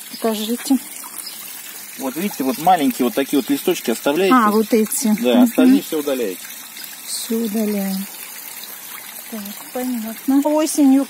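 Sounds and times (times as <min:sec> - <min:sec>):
water trickling into pond: 0:00.0 - 0:11.0.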